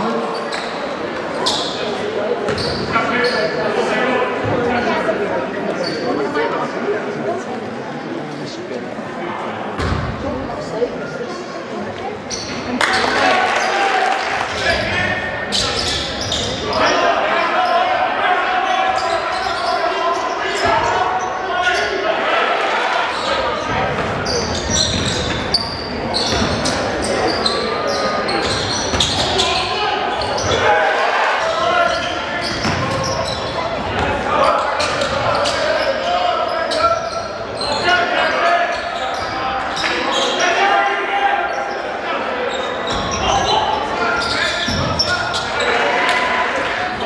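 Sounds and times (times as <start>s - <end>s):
voices calling out: 12.3s - 47.0s.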